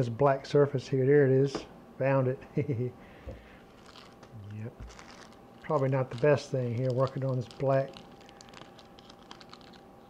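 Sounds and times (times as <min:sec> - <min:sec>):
plastic bag crinkling: 0:03.6 - 0:09.8.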